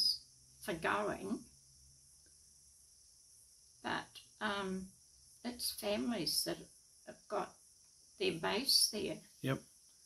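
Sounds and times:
woman speaking: 0.0 - 1.4, 3.9 - 4.9, 5.5 - 7.5, 8.2 - 9.2
crickets chirring: 0.0 - 10.0.

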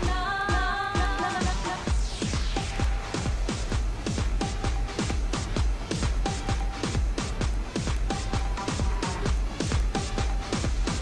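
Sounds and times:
electronic kick-drum beat: 0.0 - 11.0.

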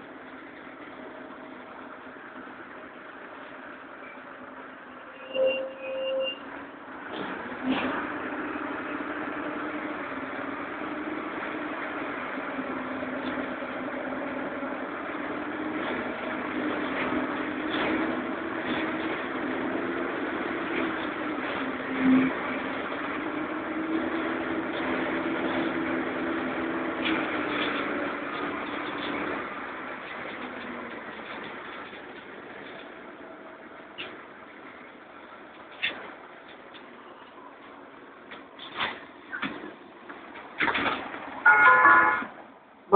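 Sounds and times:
bus diesel engine droning: 0.0 - 42.9
short beep: 5.2 - 6.4.

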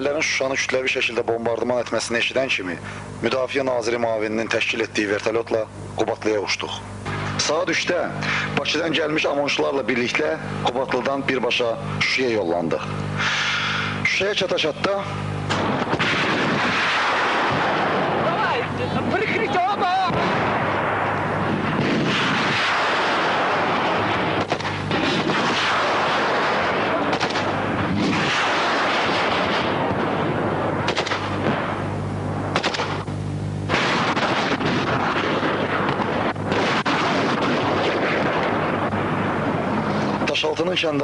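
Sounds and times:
loud noisy background: 0.0 - 41.0
small-arms gunfire: 15.5 - 18.5, 21.6 - 30.0, 30.8 - 31.8, 32.5 - 33.0, 33.7 - 38.7.

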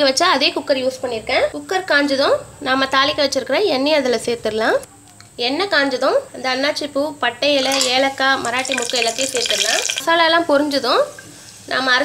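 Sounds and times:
woman speaking: 0.0 - 11.1, 11.7 - 12.0
spices sizzling in hot oil: 7.5 - 12.0.

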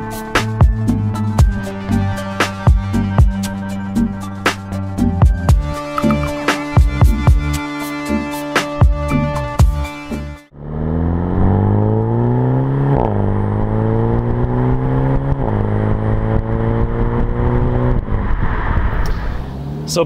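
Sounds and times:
electronic intro music: 0.0 - 10.5
car engine accelerating hard: 10.5 - 20.0.

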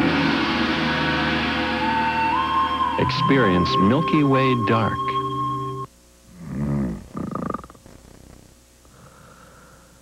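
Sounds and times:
rattling snore: 6.3 - 9.3.

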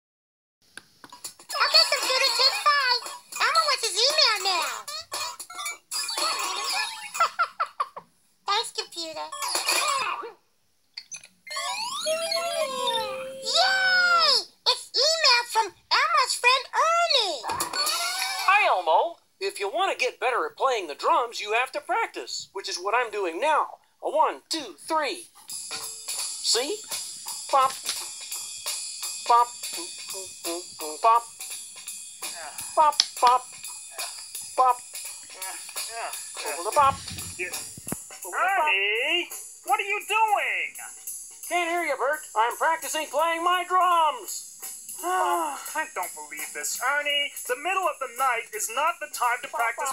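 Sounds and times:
cartoon voices singing a jingle: 11.9 - 14.3
backing music: 12.2 - 14.1, 25.5 - 49.9
drum kit steady beat: 25.5 - 43.5.

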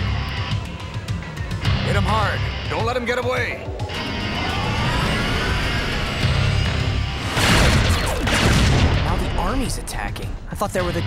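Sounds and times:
dramatic action music: 0.0 - 11.0.

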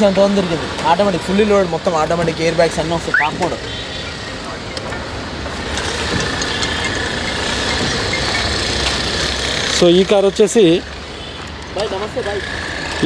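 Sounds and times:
vehicle engine rumbling: 0.0 - 13.0.

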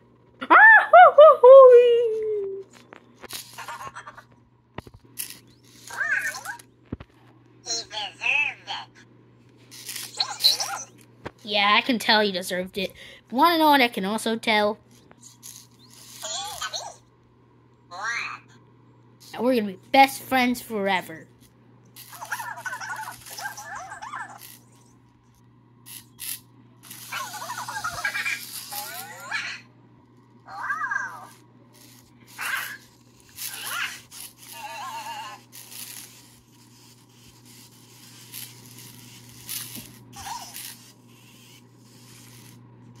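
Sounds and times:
faint low hum with hiss: 0.0 - 43.0
high-pitched squeaky chattering: 5.2 - 6.7, 9.7 - 11.0, 15.2 - 17.1, 22.0 - 24.9, 25.9 - 29.7, 30.4 - 42.5.

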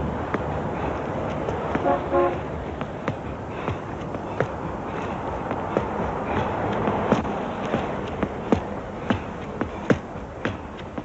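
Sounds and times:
street noise: 0.0 - 11.0
vehicle horn tooting: 1.8 - 2.4.

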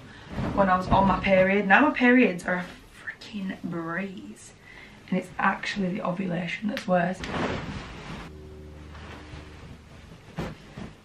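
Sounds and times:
duvet and pillows rustling: 0.0 - 3.0, 7.2 - 11.0
faint low hum: 8.0 - 11.0.

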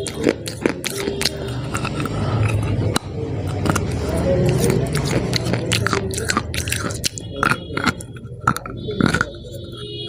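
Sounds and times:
chewing crunchy chalk: 0.0 - 10.0.

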